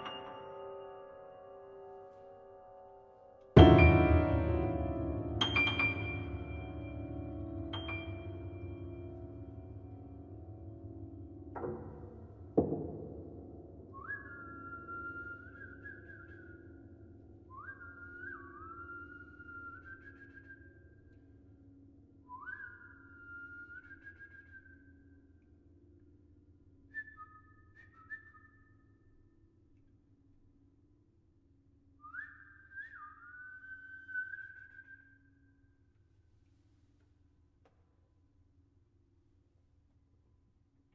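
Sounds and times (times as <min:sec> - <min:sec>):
piano strings ringing: 0:03.6 - 0:14.0
person whistling a slow melody: 0:13.9 - 0:16.9, 0:17.5 - 0:21.0, 0:22.3 - 0:25.1, 0:32.0 - 0:35.4.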